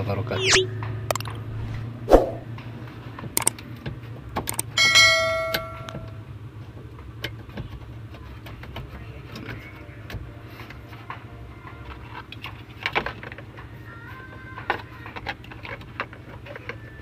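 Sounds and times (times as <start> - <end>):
brief metallic ringing: 4.8 - 6.2.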